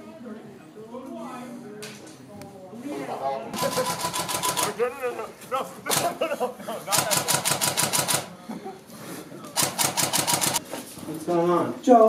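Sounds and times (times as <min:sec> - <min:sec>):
airsoft rifle automatic bursts: 0:03.6 - 0:04.9, 0:05.9 - 0:06.2, 0:06.9 - 0:08.4, 0:09.6 - 0:10.6.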